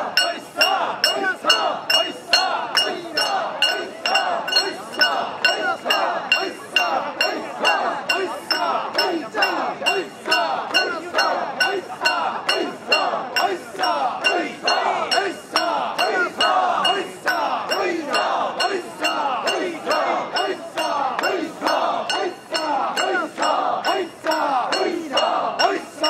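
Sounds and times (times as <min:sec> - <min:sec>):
crowd shouting a rhythmic chant: 0:00.0 - 0:26.0.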